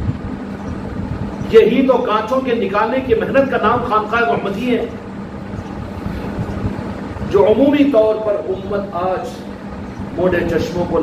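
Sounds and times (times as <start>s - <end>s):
constant hum: 0.0s - 11.0s
low background rumble: 0.0s - 11.0s.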